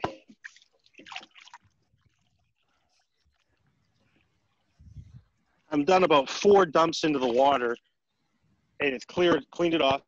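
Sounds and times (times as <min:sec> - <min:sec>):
hands sloshing in water: 0:00.0 - 0:03.5.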